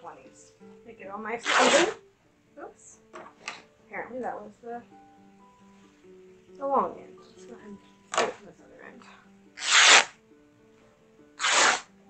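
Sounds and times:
soft background music: 0.0s - 12.0s
fabric swishing: 1.4s - 2.0s, 9.6s - 10.1s, 11.4s - 11.9s.

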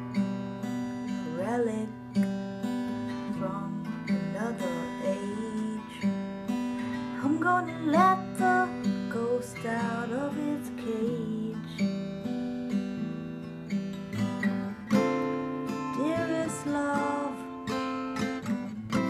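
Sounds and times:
strummed acoustic guitar: 0.0s - 19.0s
person singing: 1.2s - 2.1s, 3.1s - 6.1s, 7.1s - 11.8s, 15.8s - 17.6s.

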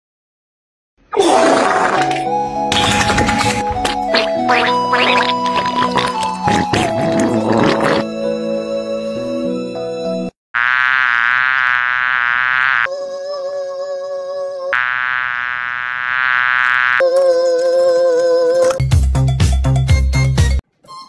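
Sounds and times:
music: 1.9s - 10.3s, 17.4s - 21.0s
high buzzing whine: 10.6s - 12.9s, 14.8s - 17.0s
music with a beat: 18.8s - 20.6s.

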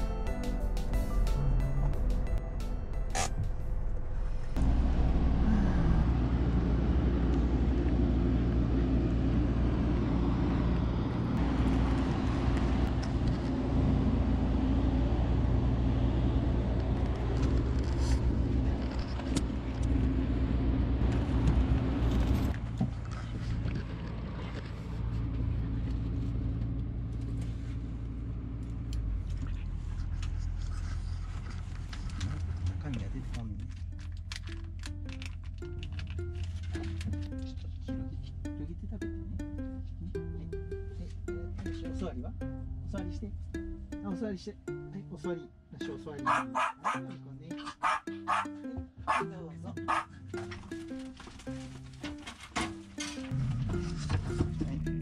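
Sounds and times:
engine humming steadily: 0.0s - 55.0s.

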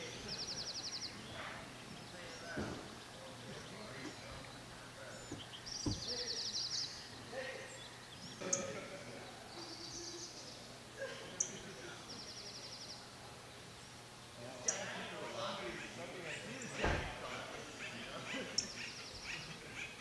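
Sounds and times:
birds singing: 0.0s - 20.0s.

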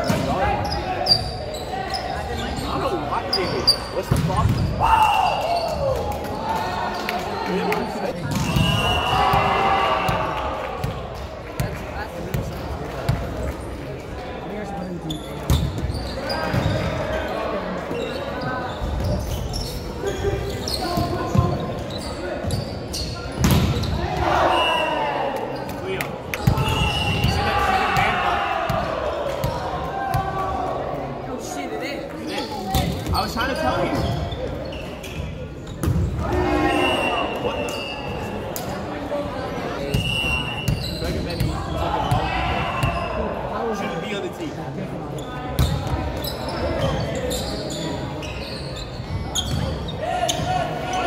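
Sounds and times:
players shouting: 4.3s - 7.5s, 8.4s - 10.9s, 23.9s - 25.6s, 26.4s - 31.0s.

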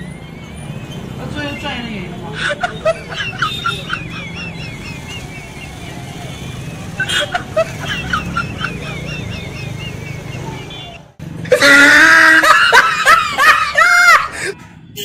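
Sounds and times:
street traffic: 0.0s - 15.0s
laughter sound effect: 2.4s - 5.9s, 7.0s - 14.5s.

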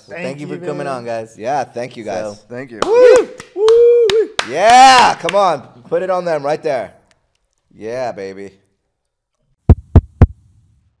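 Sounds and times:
deep booming thumps: 9.7s - 10.6s.

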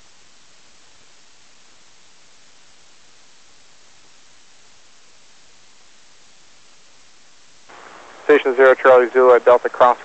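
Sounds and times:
radio receiver hiss: 7.6s - 10.0s.

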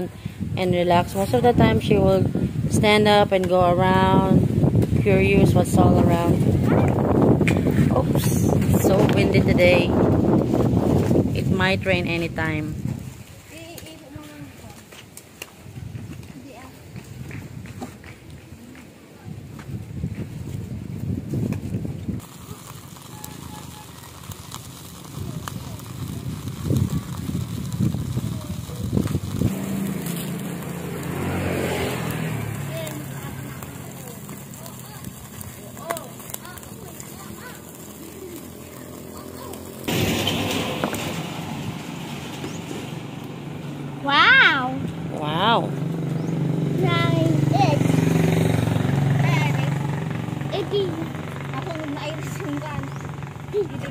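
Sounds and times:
wind on microphone: 0.0s - 13.6s, 15.6s - 22.4s, 24.2s - 35.6s
vehicle engine running: 22.2s - 53.9s.

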